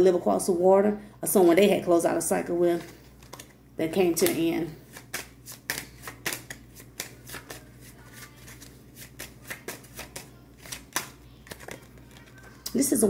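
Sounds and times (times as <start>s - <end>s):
cards being shuffled: 4.2s - 12.6s.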